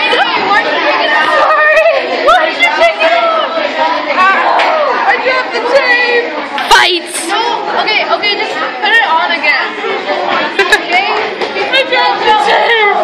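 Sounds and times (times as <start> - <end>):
young voices chattering: 0.0 - 13.0.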